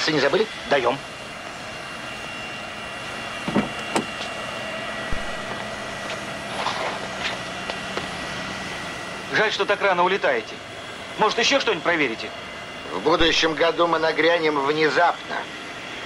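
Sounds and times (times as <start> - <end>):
jet engines whining: 0.0 - 16.0
knocks and thump: 5.1 - 5.7.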